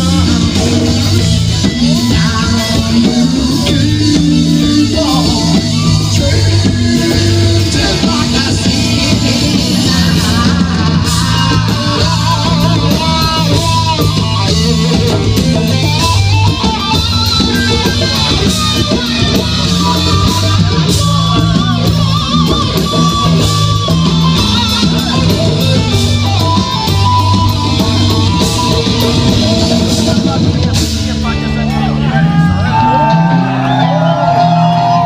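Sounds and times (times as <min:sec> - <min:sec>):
drum kit with cymbals: 0:00.0 - 0:35.0
electric guitars: 0:00.0 - 0:35.0
low bass notes: 0:00.0 - 0:35.0.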